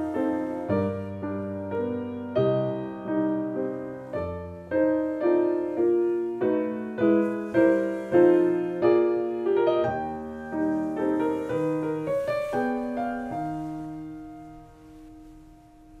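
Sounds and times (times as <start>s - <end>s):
piano notes and chords: 0.0s - 16.0s.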